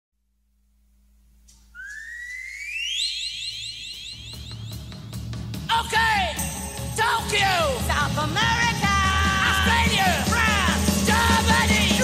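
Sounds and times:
whistle-like tone gliding upward: 1.8 - 5.0.

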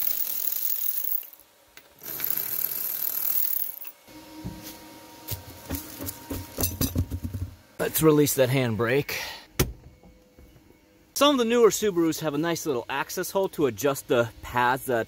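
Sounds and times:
ratcheting wrench motor whining: 0.0 - 1.4, 2.0 - 3.9.

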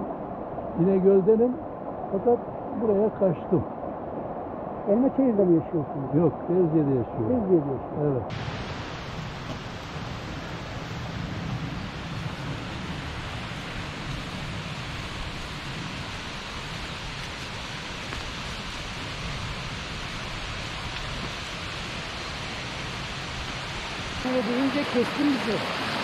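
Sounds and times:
mountain stream rushing over stones: 8.3 - 26.0.

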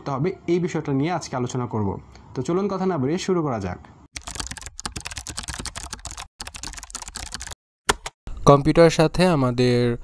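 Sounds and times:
computer keyboard typing: 4.2 - 8.1.

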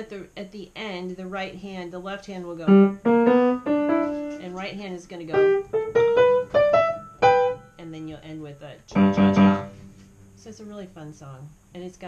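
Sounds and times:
piano notes and chords: 2.6 - 7.8, 8.9 - 10.0.

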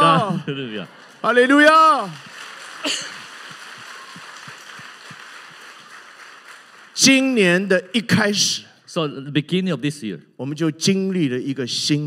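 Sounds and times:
congregation clapping: 0.0 - 8.0.

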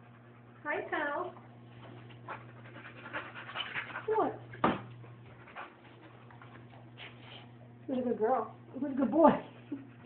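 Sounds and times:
dog panting: 0.0 - 7.6, 9.2 - 10.0.

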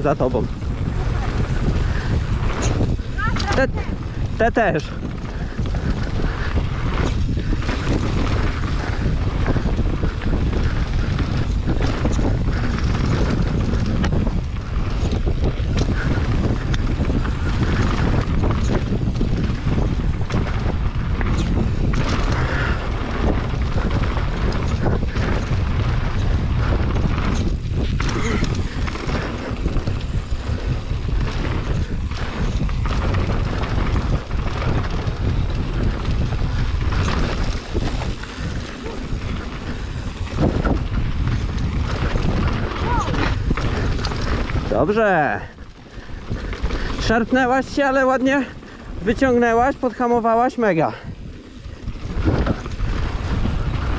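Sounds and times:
bike knocking and rattling: 0.0 - 53.9
tyre noise on dirt trail: 0.0 - 53.9
wind buffeting microphone: 0.0 - 53.9.

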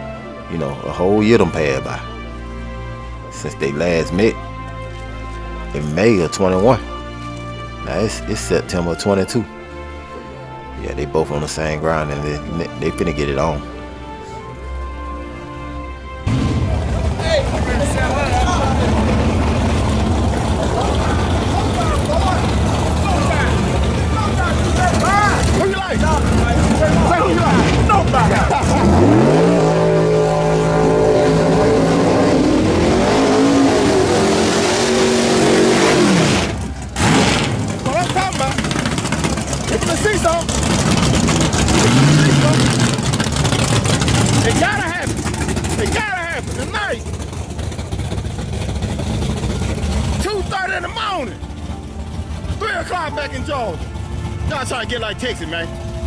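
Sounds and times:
race car engines revving: 16.2 - 56.0
spectators shouting: 20.3 - 35.9.

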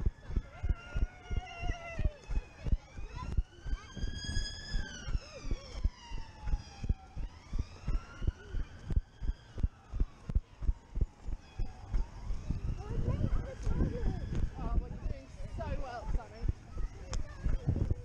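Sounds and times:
siren wailing: 0.0 - 17.0.

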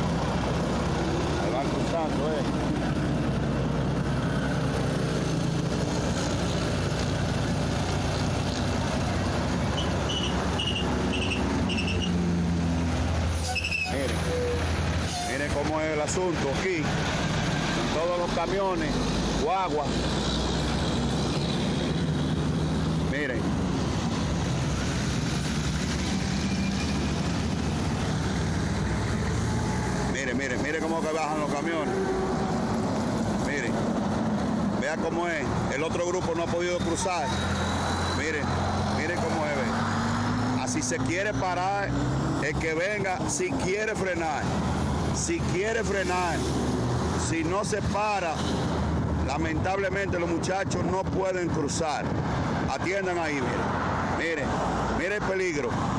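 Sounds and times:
engine and tyre rumble: 0.0 - 55.9
heavy trucks passing: 0.0 - 55.9.

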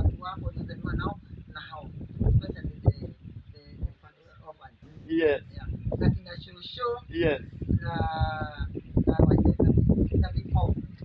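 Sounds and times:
person speaking: 0.0 - 9.7.

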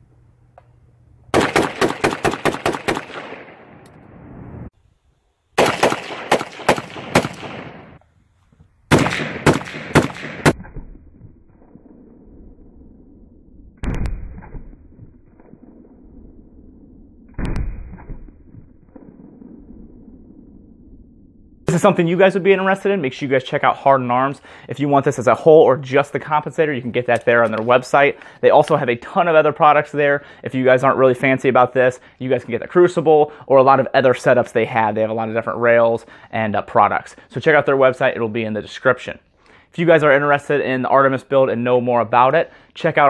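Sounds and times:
rifle firing rapidly: 1.4 - 3.6, 5.6 - 8.0, 8.9 - 10.8.

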